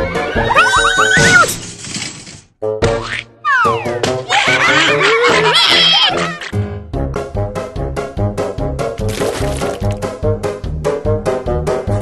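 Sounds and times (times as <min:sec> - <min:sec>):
cartoon music: 0:02.8 - 0:06.6.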